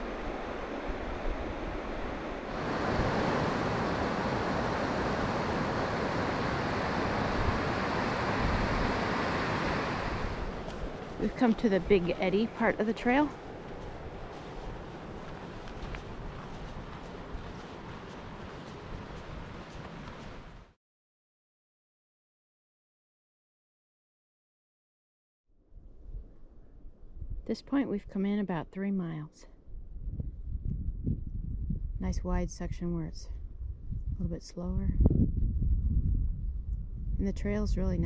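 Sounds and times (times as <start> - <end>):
rushing outdoor noise: 0.0 - 20.8
wind rumbling on microphone: 0.0 - 20.8, 25.7 - 28.2, 29.6 - 38.0.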